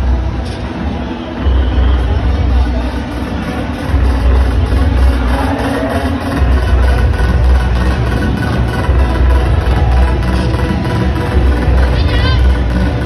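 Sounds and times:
loud distorted music over loudspeakers: 0:00.0 - 0:13.0.

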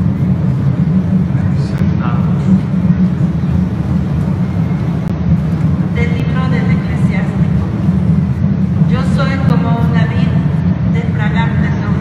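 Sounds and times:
crowded church rumble: 0:00.0 - 0:12.0.

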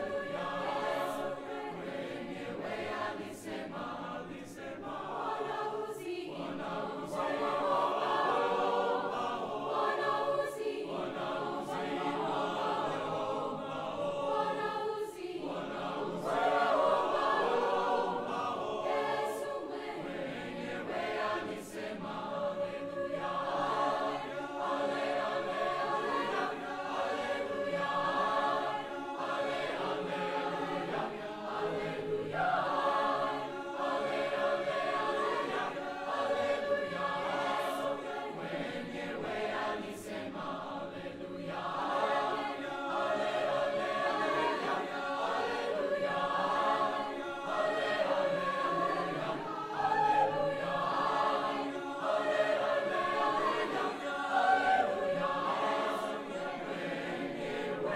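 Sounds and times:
choir singing in harmony: 0:00.0 - 0:57.9.

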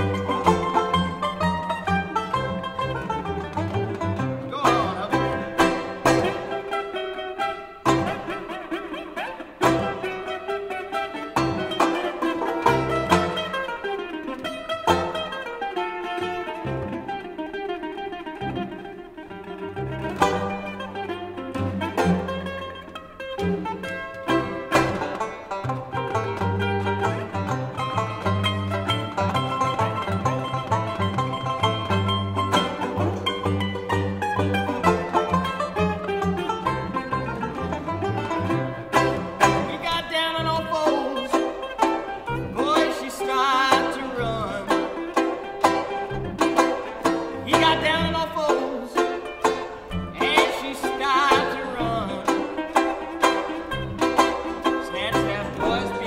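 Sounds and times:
low bass notes: 0:00.0 - 0:06.8, 0:19.4 - 0:42.9, 0:43.7 - 0:56.0
banjo: 0:00.0 - 0:56.0
mandolin picking melody: 0:00.0 - 0:56.0.

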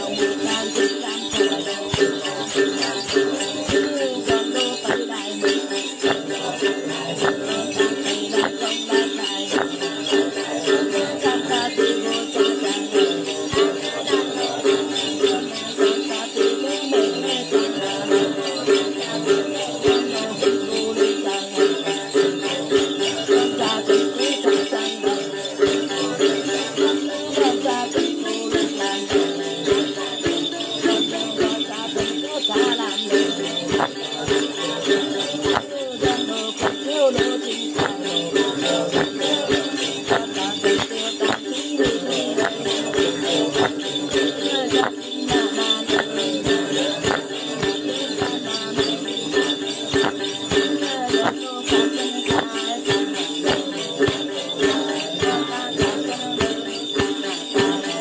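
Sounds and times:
jingle bells shaken: 0:00.0 - 0:58.0.

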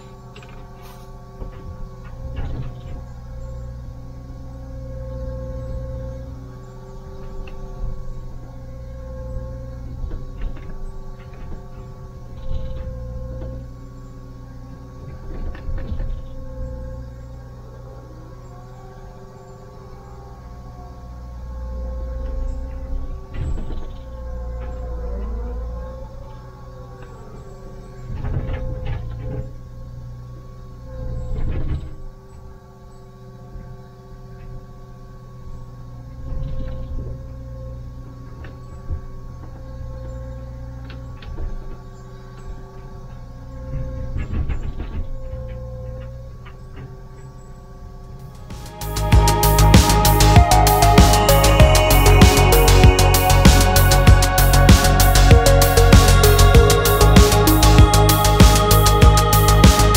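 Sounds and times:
diesel engine running: 0:00.0 - 0:44.2, 0:48.0 - 0:59.9
hydraulic whine: 0:00.0 - 0:59.9.

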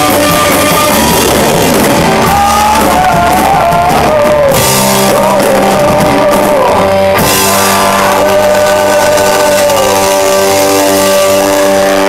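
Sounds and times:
rock band sustained chord: 0:00.0 - 0:12.0.

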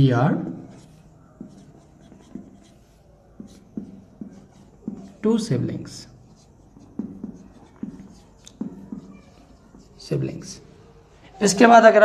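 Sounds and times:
marker writing on whiteboard: 0:00.0 - 0:11.6.

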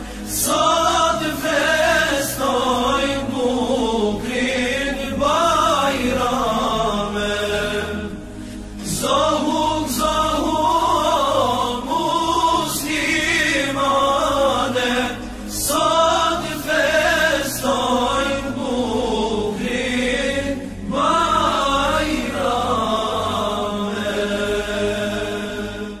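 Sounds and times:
melismatic chanting voices: 0:00.0 - 0:26.0.

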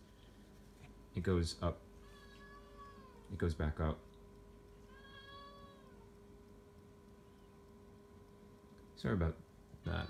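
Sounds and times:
cat meowing: 0:02.0 - 0:03.3, 0:04.8 - 0:06.1.

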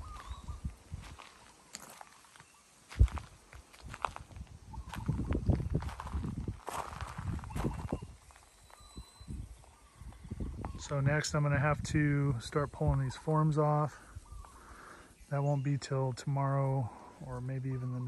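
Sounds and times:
footsteps on gravel: 0:00.0 - 0:09.8.

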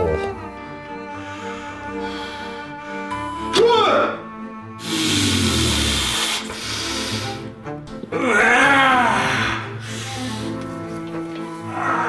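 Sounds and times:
man hissing breath through teeth: 0:04.8 - 0:07.6.

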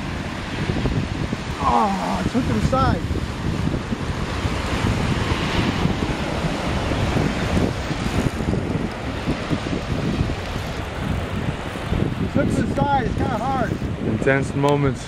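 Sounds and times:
surf at water's edge: 0:00.0 - 0:15.0
turbulent river water rushing: 0:00.0 - 0:15.0
wind on microphone: 0:00.0 - 0:15.0.

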